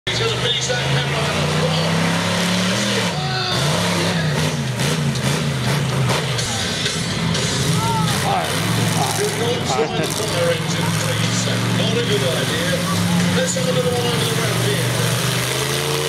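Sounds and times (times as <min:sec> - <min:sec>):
truck engine revving: 0:00.0 - 0:16.0.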